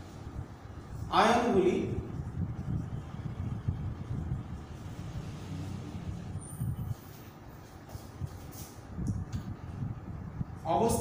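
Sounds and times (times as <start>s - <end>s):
low background rumble: 0.0s - 7.0s.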